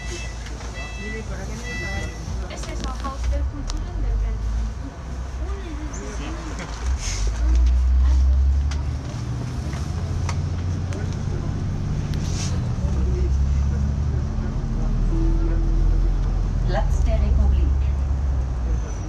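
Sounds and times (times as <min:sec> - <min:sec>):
bus engine low drone: 0:00.0 - 0:19.0.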